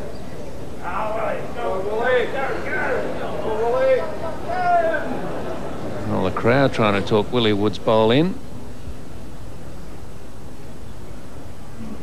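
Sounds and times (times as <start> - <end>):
voices talking: 0.0 - 8.4.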